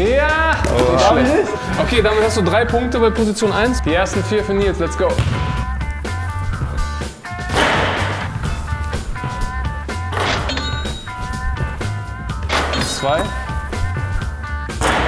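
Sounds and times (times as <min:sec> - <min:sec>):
background music with bass beat: 0:00.0 - 0:15.0.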